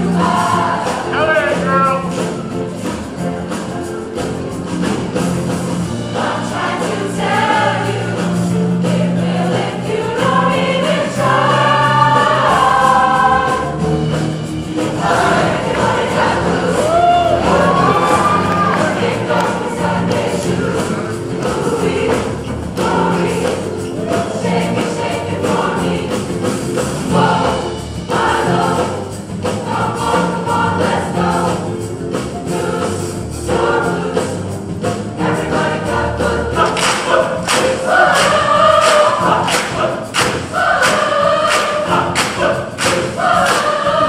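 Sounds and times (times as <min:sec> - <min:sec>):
accompaniment with steady beat: 0:00.0 - 0:44.0
choir singing upbeat song: 0:00.0 - 0:44.0.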